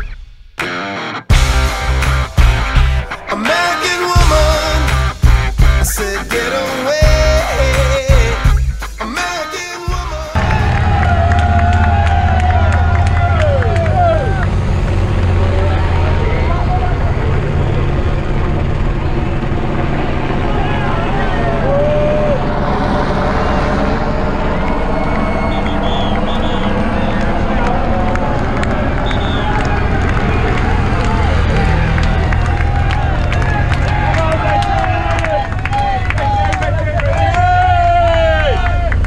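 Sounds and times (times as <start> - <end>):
spectators shouting: 10.3 - 18.0, 18.6 - 39.0
motorcycle engines rumbling past: 10.4 - 39.0.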